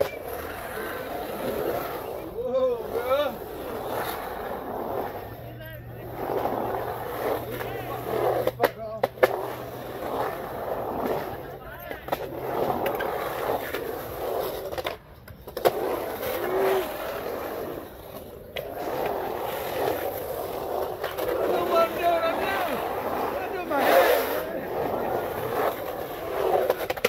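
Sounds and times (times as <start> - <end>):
skateboard clacks: 0.0 - 27.0
skateboard wheels rolling on concrete: 0.0 - 27.0.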